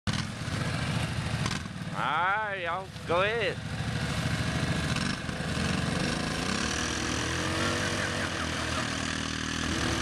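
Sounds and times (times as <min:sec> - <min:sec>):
atv engines running at low revs: 0:00.1 - 0:10.0.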